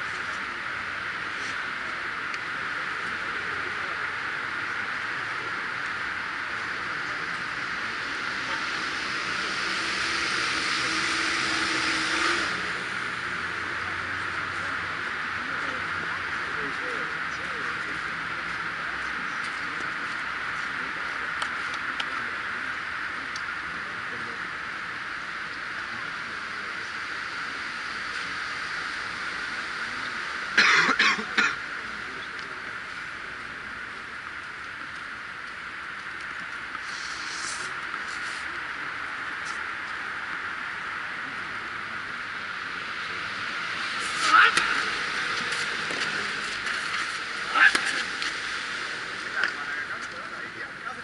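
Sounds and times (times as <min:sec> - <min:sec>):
motor vehicle humming: 0:00.0 - 0:51.0
outdoor background noise: 0:00.0 - 0:51.0
steady hiss: 0:00.0 - 0:51.0
person coughing: 0:30.6 - 0:31.6.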